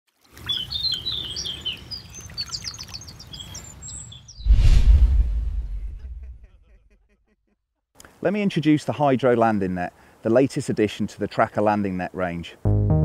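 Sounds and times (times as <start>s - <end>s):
small birds chirping: 0.3s - 4.5s
loud low whoosh: 4.4s - 6.4s
low rumble: 4.4s - 6.6s.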